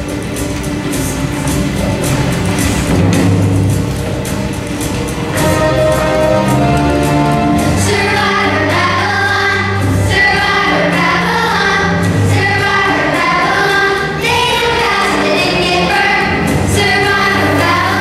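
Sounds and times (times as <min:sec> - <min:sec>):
instrumental accompaniment: 0:00.0 - 0:18.0
children's choir singing: 0:04.8 - 0:18.0.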